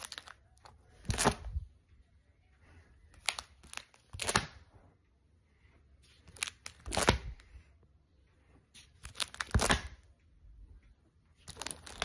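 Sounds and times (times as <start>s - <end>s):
plastic sleeve pages crinkling: 0.0s - 1.5s, 3.1s - 4.5s, 6.1s - 7.4s, 8.8s - 10.0s, 11.4s - 12.0s.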